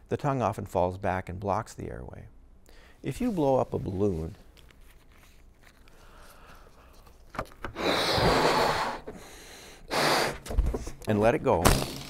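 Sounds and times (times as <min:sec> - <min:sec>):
intake of breath: 0:02.7 - 0:03.0, 0:05.9 - 0:07.1, 0:07.8 - 0:10.4
man blowing up balloon: 0:07.7 - 0:10.5.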